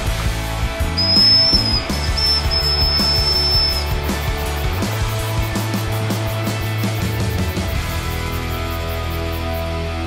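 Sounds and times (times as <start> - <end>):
background music: 0.0 - 10.0
high-pitched whistle blowing: 1.0 - 4.7.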